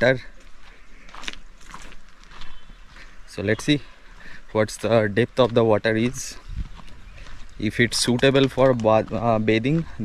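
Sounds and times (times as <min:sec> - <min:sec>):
person speaking: 0:00.0 - 0:00.4, 0:03.3 - 0:06.4, 0:07.6 - 0:10.0
footsteps scuffing on a path: 0:00.0 - 0:10.0.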